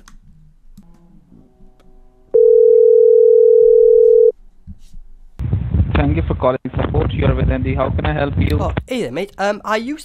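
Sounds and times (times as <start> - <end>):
telephone ringback tone: 2.3 - 4.3
person answering phone: 2.4 - 4.3.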